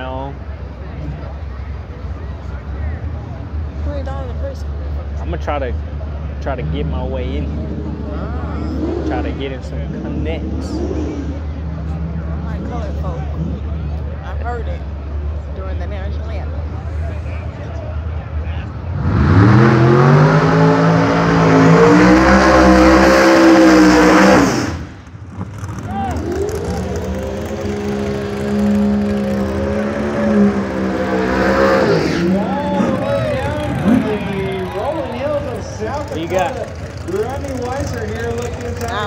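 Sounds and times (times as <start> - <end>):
drag racing engine full throttle: 0.0 - 39.0.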